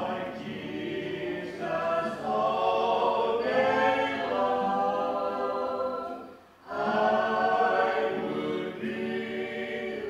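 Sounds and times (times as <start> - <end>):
classical guitar: 0.0 - 10.0
group of voices singing a hymn: 0.0 - 10.0.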